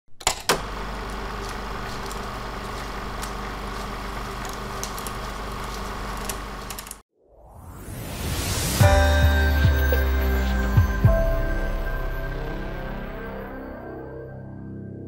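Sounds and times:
rising swell: 7.2s - 15.0s.

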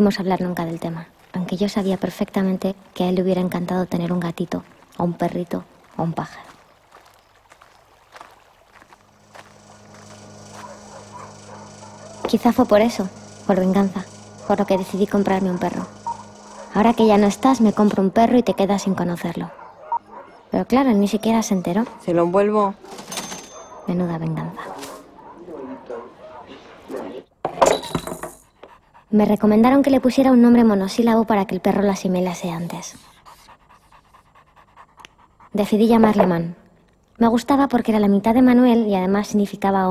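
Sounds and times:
low steady hum: 8.7s - 22.2s
puppy panting: 9.3s - 20.4s, 28.4s - 30.1s, 32.8s - 36.3s.

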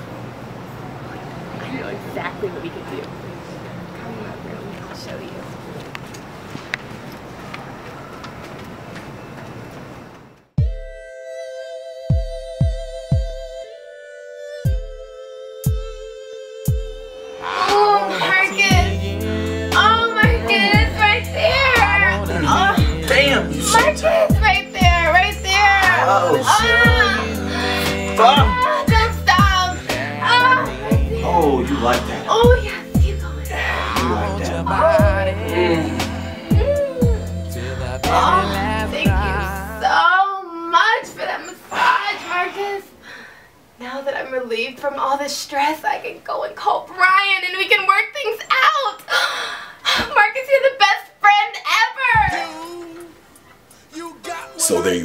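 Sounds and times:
deep kick drum: 10.6s - 11.0s, 12.1s - 13.6s, 16.7s - 17.1s, 20.2s - 21.0s, 21.8s - 25.1s, 28.4s - 29.6s, 30.9s - 31.2s, 32.4s - 33.2s, 36.5s - 37.4s, 39.1s - 39.3s
high singing voice: 11.0s - 40.2s, 52.1s - 53.2s
r and b song with bass: 14.6s - 40.0s, 52.1s - 53.1s
person gasping: 35.5s - 37.9s, 49.1s - 50.1s.

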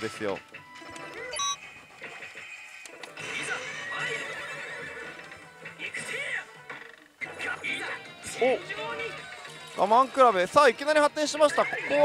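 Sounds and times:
slot machine music: 0.0s - 1.8s
horse whinny: 3.4s - 5.2s.

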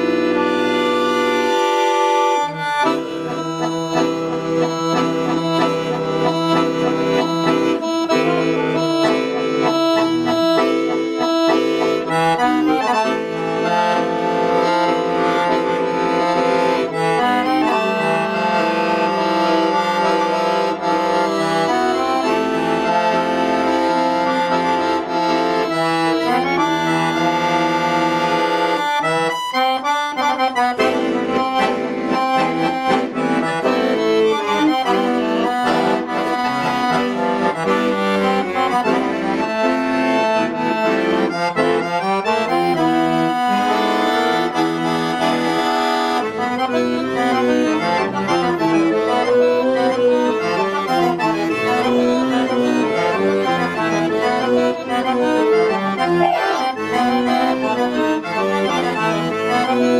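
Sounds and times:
piano accordion playing: 0.0s - 59.9s.

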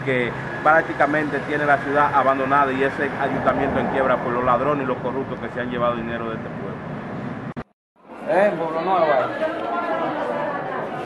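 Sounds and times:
people talking at once: 8.2s - 11.0s.

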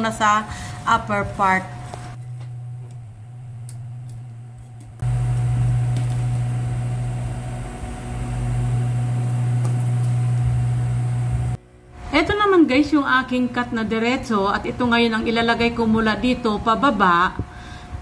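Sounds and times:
sewing machine motor humming: 2.2s - 11.6s.

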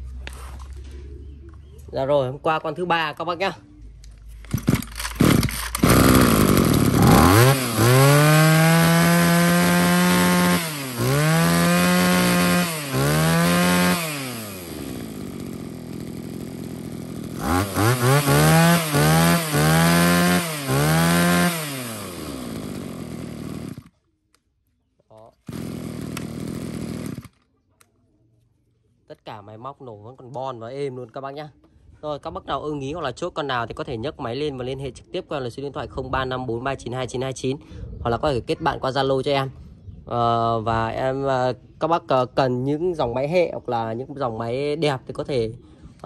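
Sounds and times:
brush cutter engine revving: 4.4s - 24.0s, 25.3s - 27.5s.

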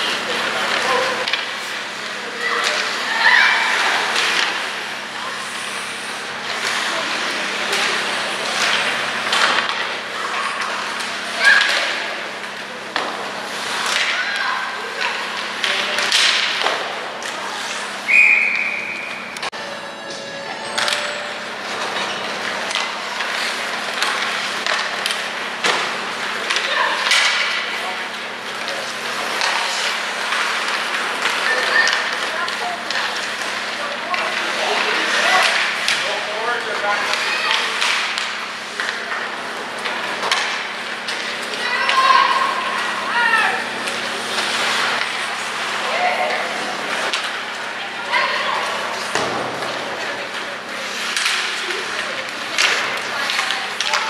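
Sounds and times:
hockey sticks and puck clacking: 0.0s - 3.1s, 3.7s - 4.8s, 6.5s - 18.2s, 20.8s - 54.0s
referee's whistle: 18.1s - 19.2s
voices: 26.2s - 54.0s.

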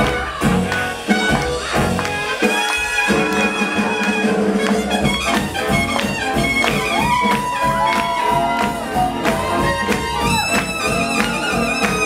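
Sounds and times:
swing jazz band playing: 0.0s - 12.0s.

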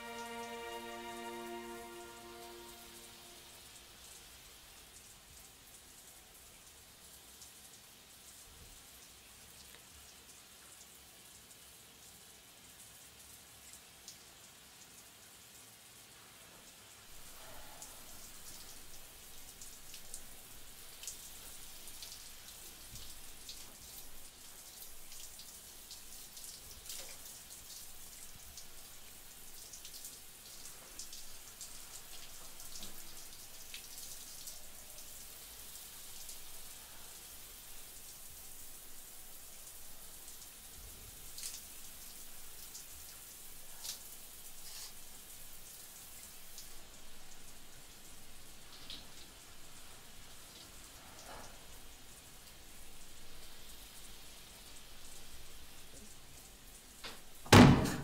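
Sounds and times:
shower water spattering: 17.1s - 58.0s.

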